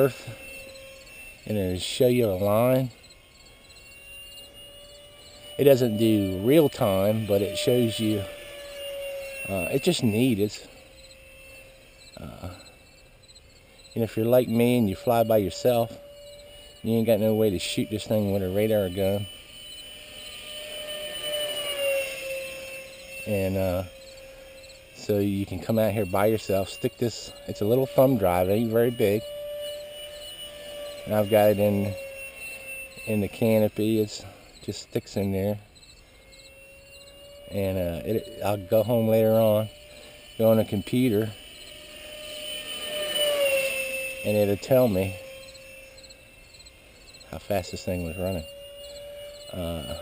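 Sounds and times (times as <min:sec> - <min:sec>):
jet fan whining in flight: 0:00.0 - 0:50.0.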